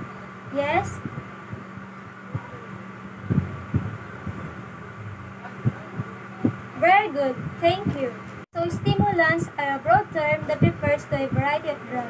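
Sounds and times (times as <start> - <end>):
low background hum: 0.0 - 12.0
soft dull low thumps: 0.6 - 11.6.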